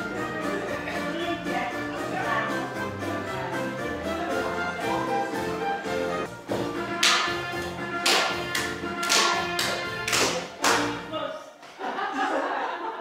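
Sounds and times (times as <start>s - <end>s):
dance music: 0.0s - 11.3s.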